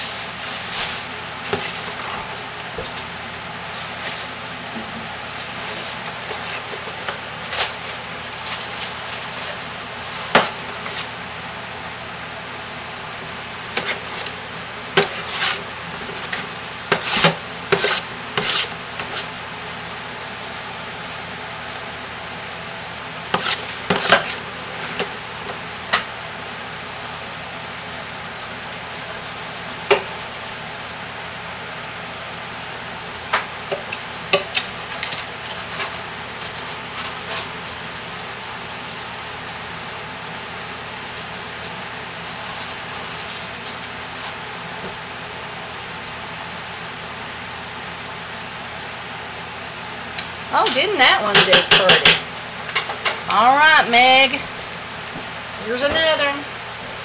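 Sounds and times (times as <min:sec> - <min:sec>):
spoon scraping a pot: 0:15.0 - 0:19.3, 0:23.4 - 0:24.4.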